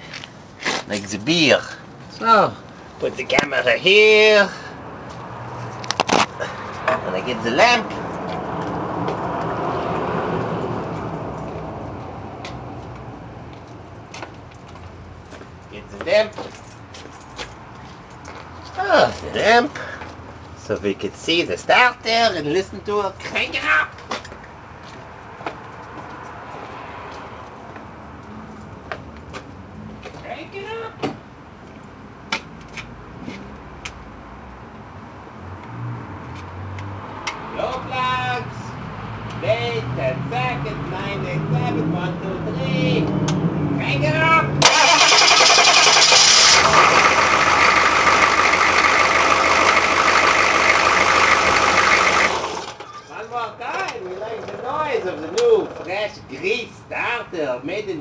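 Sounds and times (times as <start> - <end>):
road vehicle passing by: 3.8 - 15.8, 24.4 - 30.4, 31.4 - 56.6.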